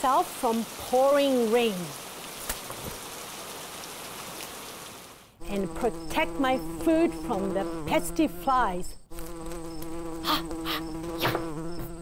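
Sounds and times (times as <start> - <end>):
fly buzzing: 5.4 - 12.0
fly swatter swishing: 10.2 - 11.6.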